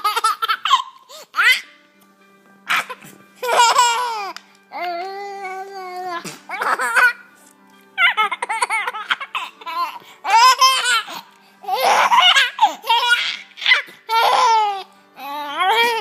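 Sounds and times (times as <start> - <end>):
baby laughing: 0.0 - 1.7, 2.7 - 7.3, 8.0 - 16.0.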